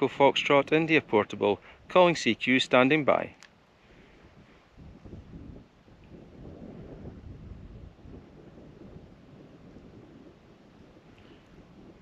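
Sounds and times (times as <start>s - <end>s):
wind buffeting microphone: 0.0s - 3.1s, 3.7s - 12.0s.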